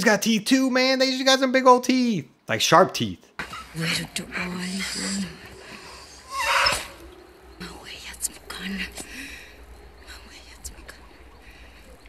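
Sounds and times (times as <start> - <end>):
faint low background: 0.0 - 12.0
woman whispering softly: 7.6 - 9.4, 10.0 - 11.8.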